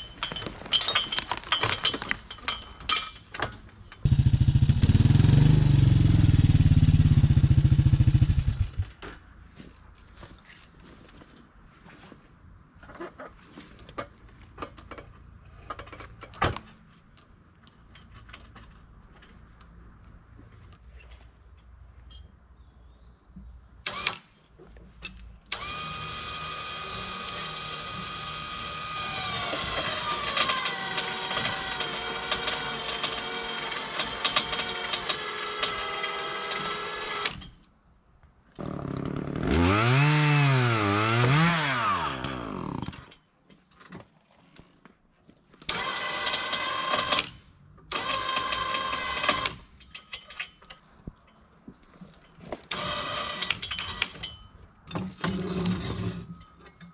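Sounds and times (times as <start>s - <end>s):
winch motor whining: 25.5s - 37.4s, 47.9s - 49.6s, 52.7s - 54.2s.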